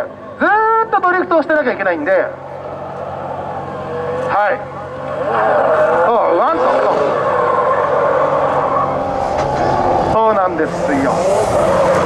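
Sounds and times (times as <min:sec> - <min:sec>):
car engines at high revs: 0:00.0 - 0:12.0.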